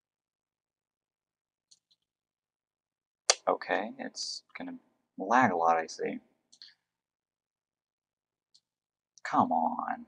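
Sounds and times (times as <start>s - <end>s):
person speaking: 3.3s - 6.8s, 9.2s - 10.0s.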